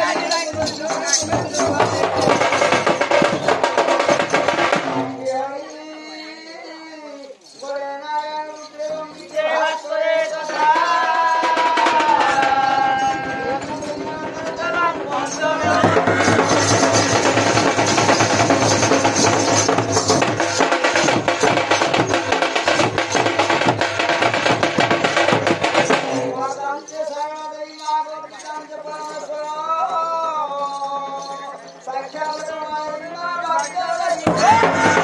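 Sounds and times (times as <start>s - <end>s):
folk band playing dance music: 0.0s - 5.3s, 9.2s - 26.9s, 33.6s - 35.0s
rapid drumming: 0.0s - 5.4s, 10.4s - 26.6s, 33.6s - 35.0s.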